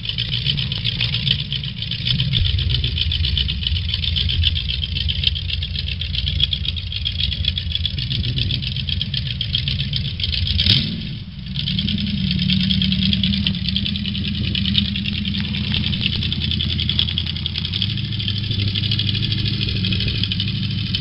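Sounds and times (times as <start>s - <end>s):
engine idling: 0.0s - 21.0s.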